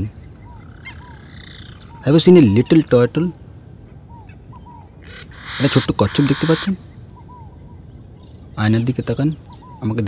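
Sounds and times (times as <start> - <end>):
faint bird chirps: 0.0 - 10.0
man's voice: 5.6 - 6.8.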